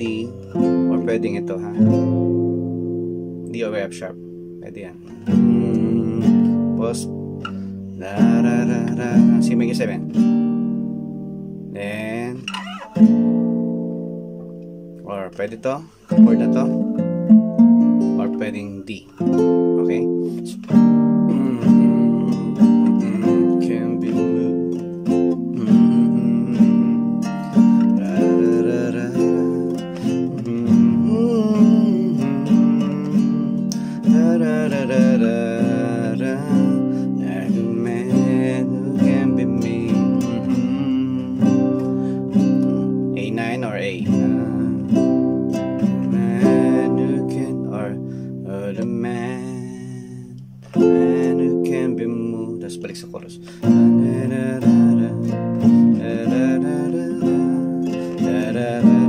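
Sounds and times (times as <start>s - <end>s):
nylon-string guitar strummed chords: 0.0s - 59.0s.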